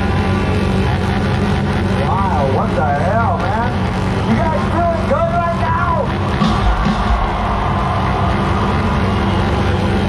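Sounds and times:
low drone over stage speakers: 0.0 - 10.0.

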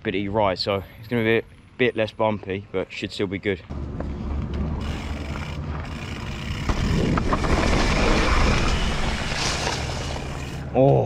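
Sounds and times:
bike tyres rolling over dirt: 4.3 - 11.0
bike clicks: 4.4 - 10.8.

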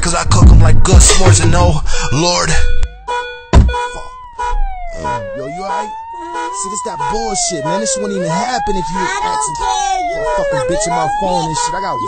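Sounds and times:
siren wailing: 0.0 - 12.0
loud thump: 3.5 - 4.0.

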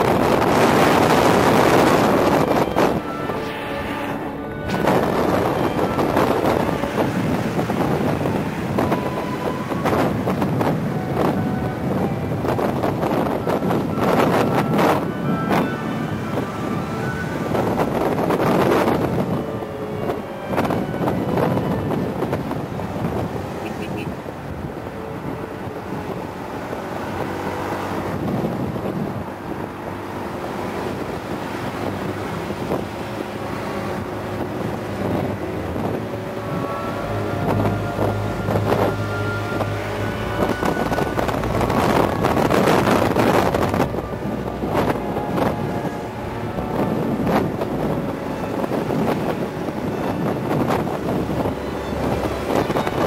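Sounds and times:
road noise: 0.0 - 53.0
wind buffeting microphone: 0.0 - 53.0.

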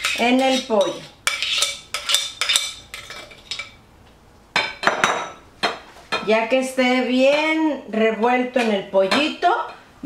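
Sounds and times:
metal utensil clinking on glass bowl: 0.0 - 3.8.

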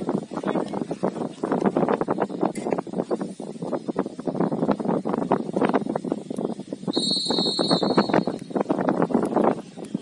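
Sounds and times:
crackling background: 0.0 - 10.0
referee's whistle blast: 6.9 - 8.4.

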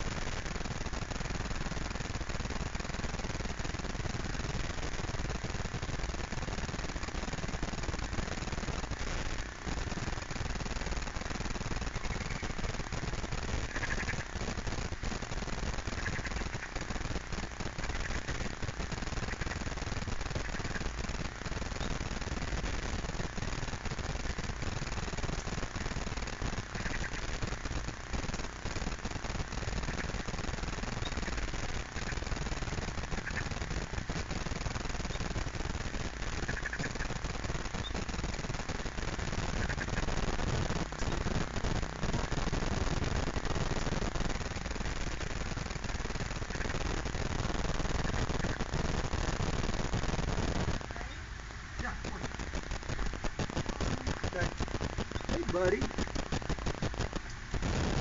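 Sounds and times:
rough outdoor background noise: 0.0 - 58.0
small crackles: 0.0 - 58.0
faint chirps: 30.9 - 32.2, 36.4 - 38.4, 53.8 - 55.9.

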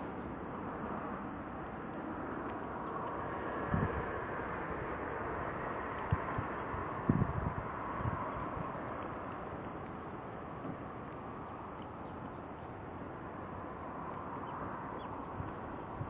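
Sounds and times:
wind buffeting microphone: 2.7 - 12.7, 13.7 - 16.0.

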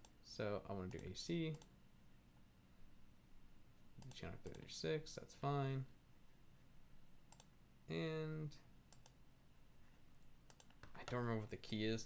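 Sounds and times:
computer mouse click: 4.0 - 4.7, 7.3 - 7.5, 8.9 - 9.2, 10.1 - 11.2.

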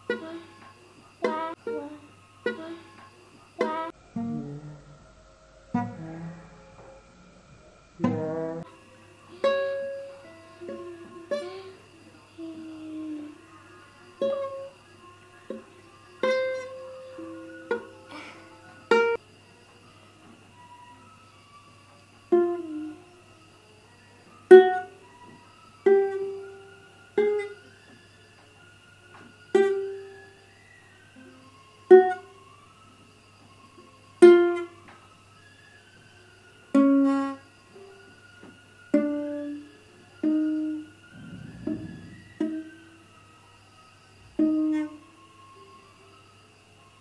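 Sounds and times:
ukulele plucked low notes: 4.1 - 5.0.

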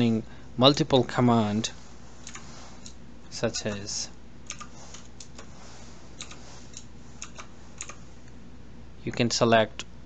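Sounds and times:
faint low hum: 0.0 - 10.0
keyboard keystrokes: 2.2 - 3.0, 4.5 - 5.5, 6.2 - 8.0.

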